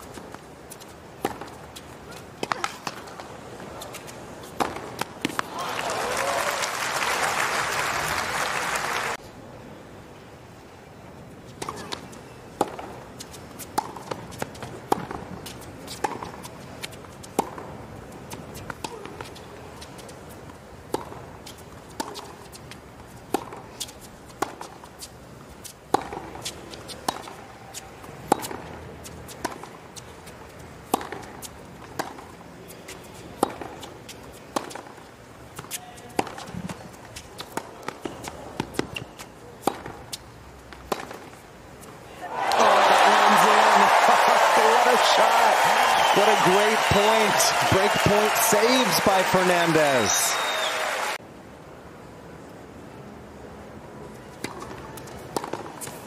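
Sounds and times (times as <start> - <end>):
tennis ball bouncing: 0.0 - 3.1, 3.8 - 5.5, 11.6 - 20.2, 20.8 - 25.1, 25.9 - 28.7, 29.3 - 41.4, 54.4 - 56.0
racquets hitting tennis ball: 0.0 - 5.9, 11.6 - 41.4, 42.4 - 51.2, 54.4 - 56.0
crowd murmur: 42.2 - 51.2.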